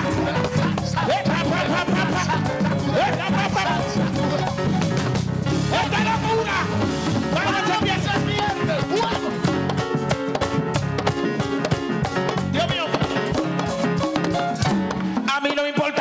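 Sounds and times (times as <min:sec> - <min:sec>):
live band playing worship music: 0:00.0 - 0:16.0.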